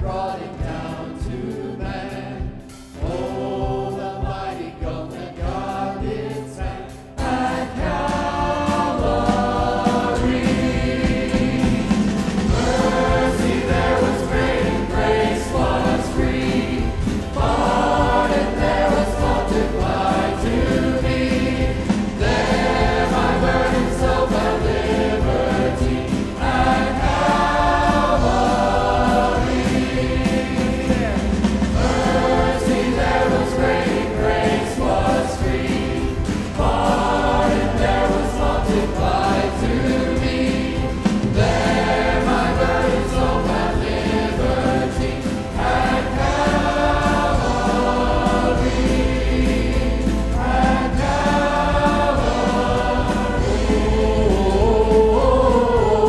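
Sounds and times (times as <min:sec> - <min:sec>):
choir singing worship song: 0:00.0 - 0:56.0
band with electric guitar: 0:05.5 - 0:56.0.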